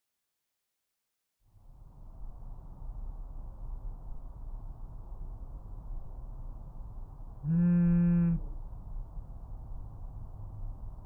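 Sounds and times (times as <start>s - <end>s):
constant low hum: 1.5s - 11.0s
phone vibrating buzz: 7.5s - 8.4s.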